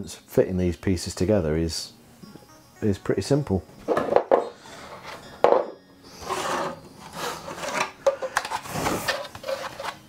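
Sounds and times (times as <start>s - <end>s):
plastic rubbing and scraping: 6.2s - 10.0s.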